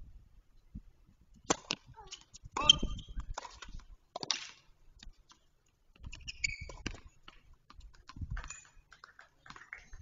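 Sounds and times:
shoe squeak on court: 2.1 - 3.2, 6.0 - 7.0.

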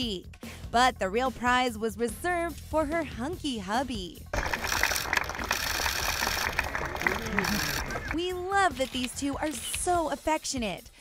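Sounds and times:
camera shutters clicking: 4.4 - 9.9.

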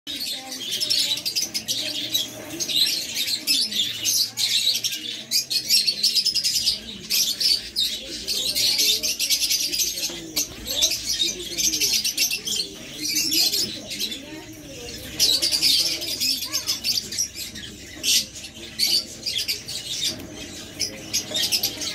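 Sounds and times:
lovebirds chattering shrilly: 0.1 - 21.9.

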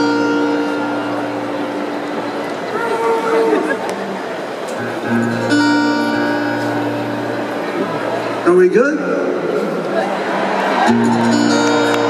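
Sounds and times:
acoustic guitar chord ringing: 4.8 - 8.4.

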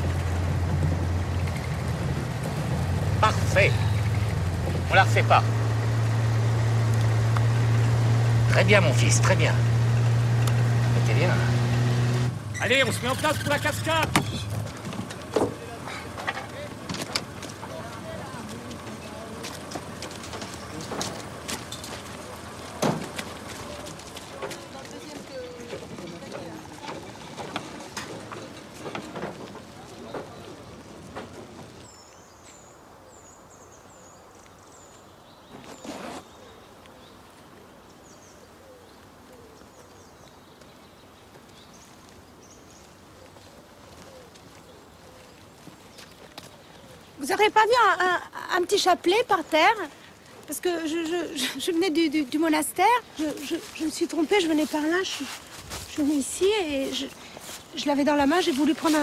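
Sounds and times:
woodland hush: 3.0 - 9.3.

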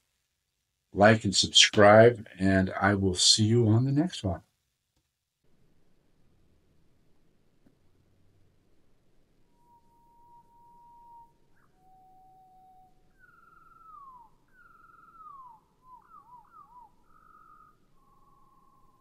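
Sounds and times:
whistled notes: 9.4 - 19.0.

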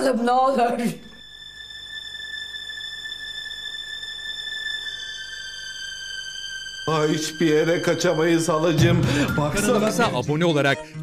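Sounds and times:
high-pitched electronic tone: 1.0 - 10.2.

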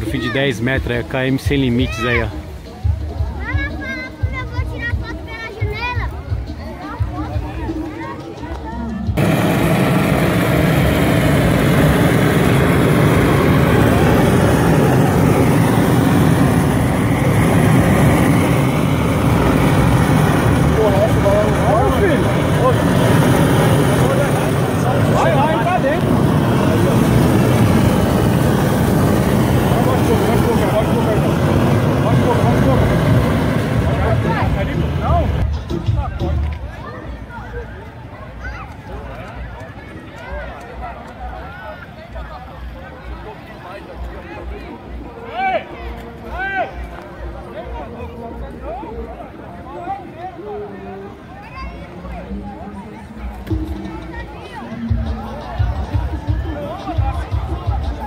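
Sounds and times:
gas torch burner blast: 9.2 - 35.4.

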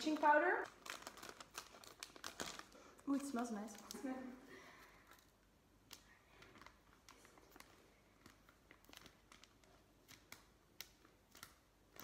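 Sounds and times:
powder rustling from plastic bag: 0.0 - 4.2.

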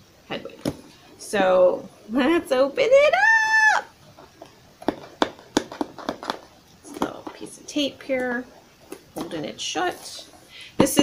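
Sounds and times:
sharp crackles and taps: 4.2 - 7.4.

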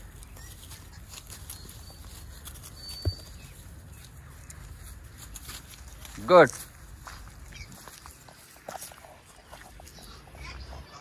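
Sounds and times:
grass being torn and chewed: 0.0 - 11.0.

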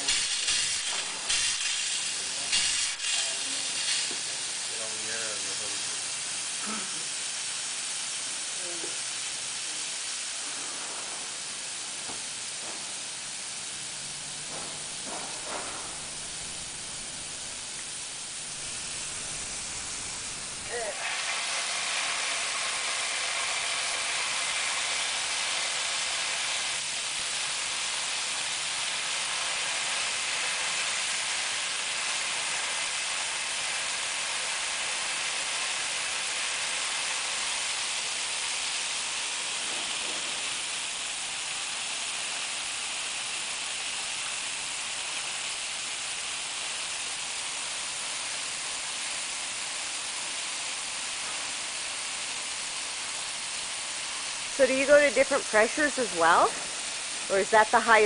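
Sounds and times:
hose water spraying on wall: 0.0 - 58.0.

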